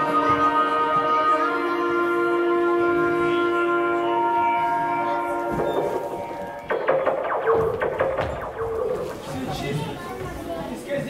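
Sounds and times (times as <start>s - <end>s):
held electronic tone: 4.5s - 10.1s
chirping falling bleeps: 5.6s - 9.5s.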